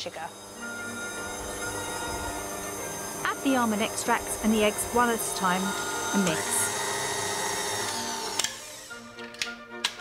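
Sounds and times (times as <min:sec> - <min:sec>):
stand mixer whining motor: 0:00.0 - 0:09.1.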